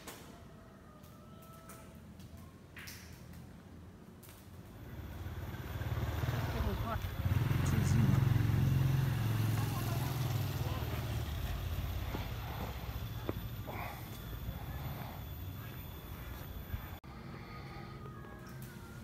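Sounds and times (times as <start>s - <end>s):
vehicle engine rumble: 4.5s - 19.0s
people's voices: 6.4s - 19.0s.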